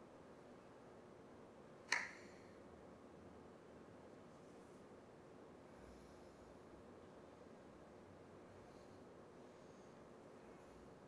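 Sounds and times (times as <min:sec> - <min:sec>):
sharp click: 0:01.9 - 0:02.2.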